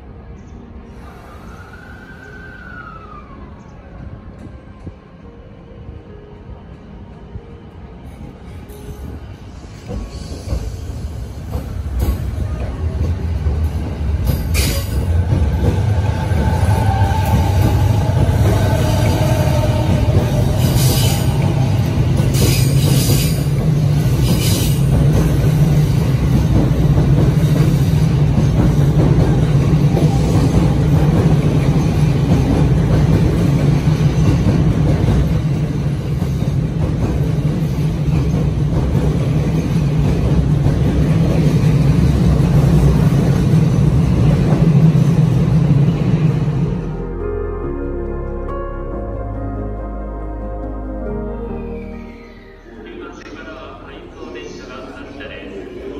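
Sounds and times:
electric train running past: 0:00.0 - 0:49.1, 0:50.6 - 0:55.9.

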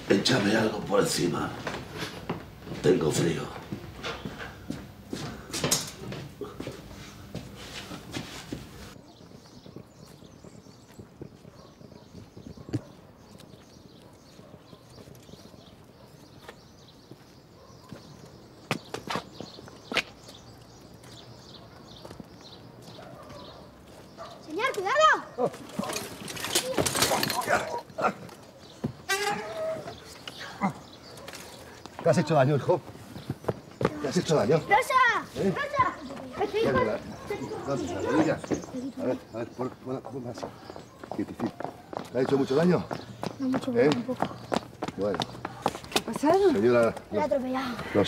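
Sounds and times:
bicycle crashing clatter: 0:25.6 - 0:27.7.

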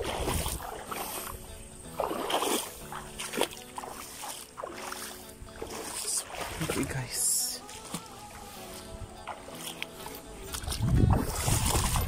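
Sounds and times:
soft background music: 0:00.0 - 0:12.0
water splashing and sloshing: 0:00.0 - 0:12.0.

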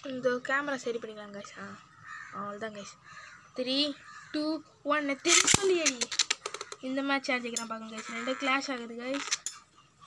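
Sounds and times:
spinning top launcher rasp and snap: 0:05.3 - 0:06.8
plastic tops clicking and clashing: 0:05.3 - 0:06.9.

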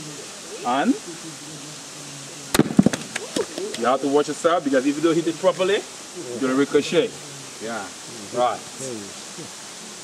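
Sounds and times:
stone cracking on coconut: 0:02.5 - 0:03.8
stone and coconut clattering: 0:02.6 - 0:03.9.

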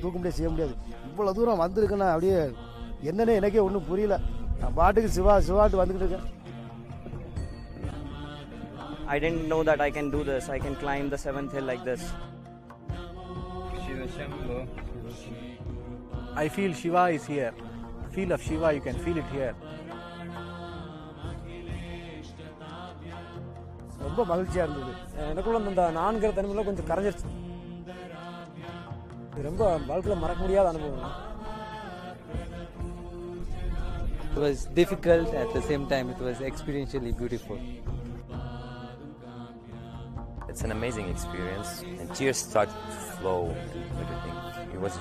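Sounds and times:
devotional music with chanting: 0:00.0 - 0:45.0.

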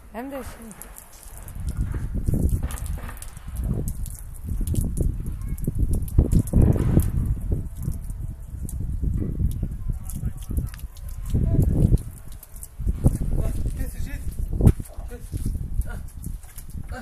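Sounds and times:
gusting rumble on microphone: 0:00.0 - 0:17.0.

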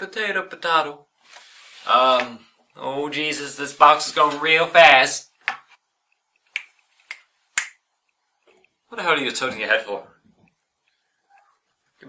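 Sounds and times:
man snapping fingers: 0:06.5 - 0:07.8.

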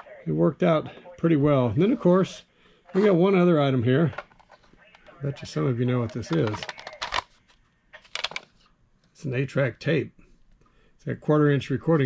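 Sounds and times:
plastic cartridge clicks and rattles: 0:06.0 - 0:07.3, 0:08.0 - 0:08.5.

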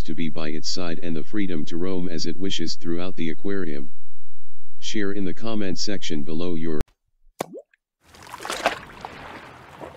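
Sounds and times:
water drop plop: 0:07.4 - 0:09.9
rushing water: 0:08.1 - 0:09.9.

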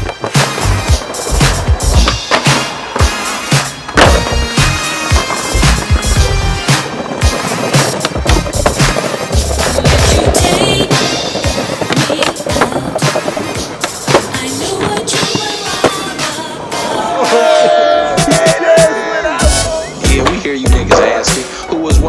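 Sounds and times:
skateboard clacks: 0:00.0 - 0:18.4, 0:20.1 - 0:21.4
music: 0:00.0 - 0:22.0
skateboard wheels rolling: 0:00.0 - 0:22.0.

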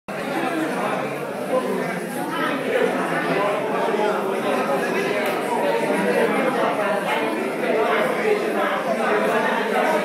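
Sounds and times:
crowd chatter: 0:00.1 - 0:10.0.

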